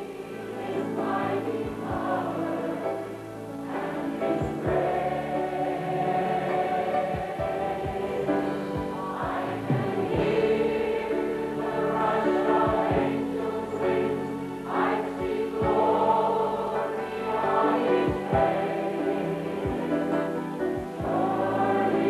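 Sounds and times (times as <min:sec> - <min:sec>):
congregation singing a hymn: 0:00.0 - 0:22.0
electronic keyboard: 0:00.0 - 0:22.0.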